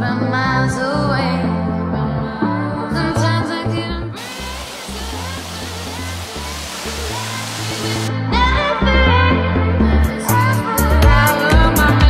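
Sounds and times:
waterfall rushing into pond: 4.2s - 8.1s.

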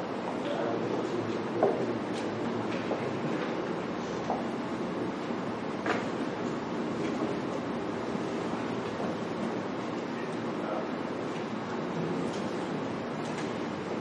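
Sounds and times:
room noise: 0.0s - 14.0s.

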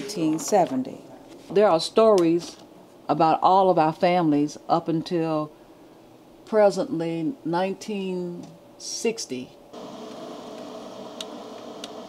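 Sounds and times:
machine fan humming: 5.0s - 12.0s.

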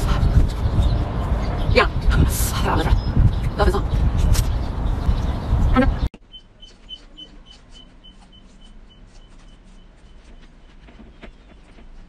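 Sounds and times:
wind buffeting microphone: 0.0s - 6.1s
street noise rumble: 0.0s - 12.0s.

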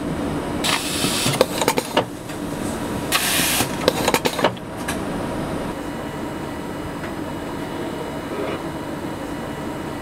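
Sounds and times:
compressed air hiss: 3.1s - 3.7s
machine hum: 4.6s - 10.0s.

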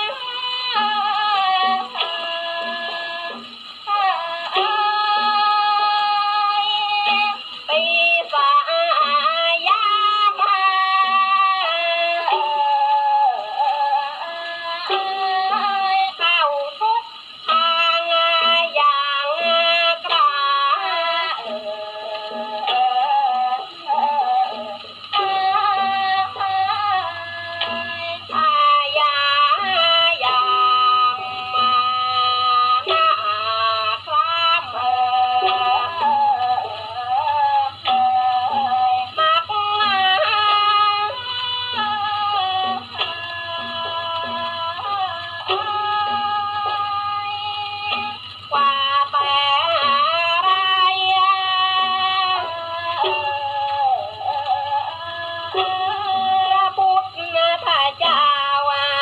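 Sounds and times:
woman singing on old gramophone record: 0.0s - 59.0s.

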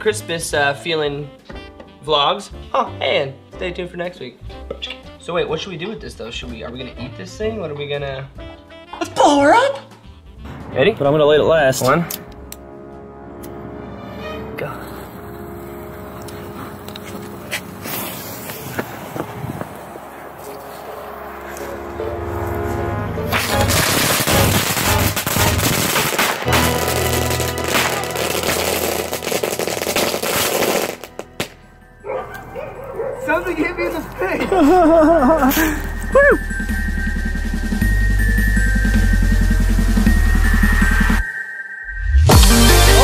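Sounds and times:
music: 0.0s - 43.0s
fireworks crackling: 15.0s - 21.9s, 23.3s - 31.6s.

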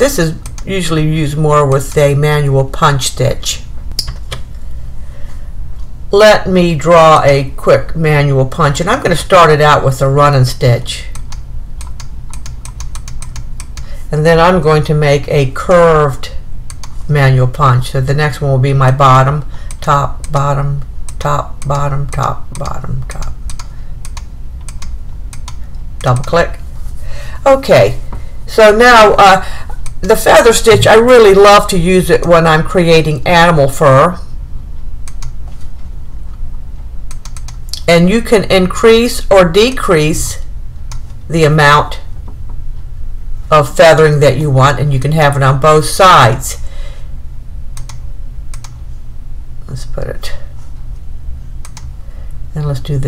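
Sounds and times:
low steady hum: 0.0s - 53.0s
rapid computer mouse clicking: 0.4s - 0.7s, 11.1s - 13.9s, 16.7s - 17.0s, 19.6s - 20.4s, 22.5s - 26.4s, 29.8s - 30.0s, 35.0s - 35.4s, 37.1s - 37.8s, 40.9s - 41.2s, 47.8s - 48.8s, 51.6s - 51.9s.

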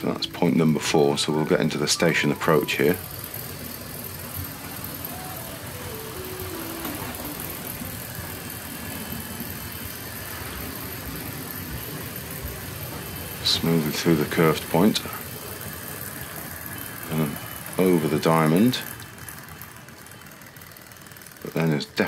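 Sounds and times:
model train motor hum: 0.0s - 22.0s
wheels rumbling on track: 0.0s - 22.0s.

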